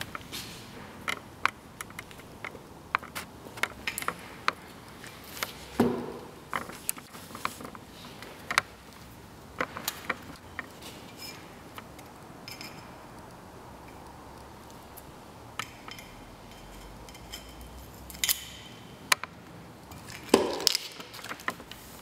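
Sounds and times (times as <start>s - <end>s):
tools clicking and knocking: 0.0s - 4.8s, 15.5s - 19.3s.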